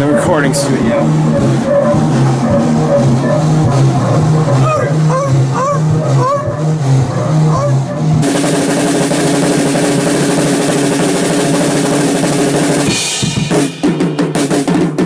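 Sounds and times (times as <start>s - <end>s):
whooping glides: 0.0s - 8.2s
music with bass riff: 0.0s - 15.0s
drum kit with cymbals: 7.4s - 15.0s.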